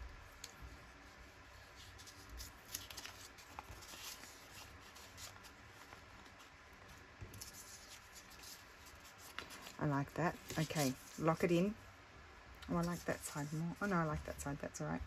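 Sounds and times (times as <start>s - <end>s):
paper rustling: 1.4s - 11.7s, 12.7s - 14.6s.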